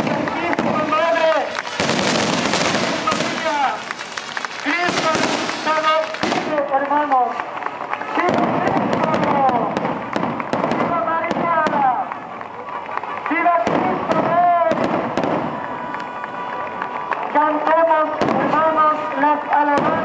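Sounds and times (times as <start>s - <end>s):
crowd voices calling out: 0.0s - 20.0s
firecrackers crackling and popping: 0.0s - 20.0s.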